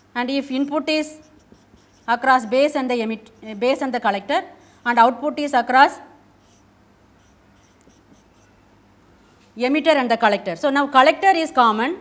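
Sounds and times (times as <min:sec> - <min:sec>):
marker scratching on whiteboard: 0:00.0 - 0:03.8, 0:06.4 - 0:08.6.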